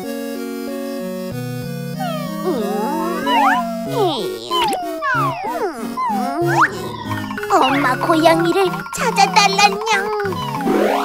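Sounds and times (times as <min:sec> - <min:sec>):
kitten meowing: 0:02.0 - 0:08.0
bouncy children's instrumental music: 0:02.0 - 0:11.0.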